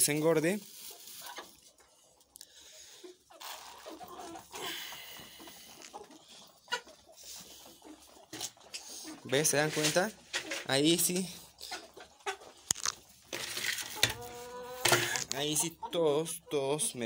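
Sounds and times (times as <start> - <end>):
chickens pecking at pellets: 0.6 - 16.0
feed pellets pattering into feeder: 12.7 - 14.2.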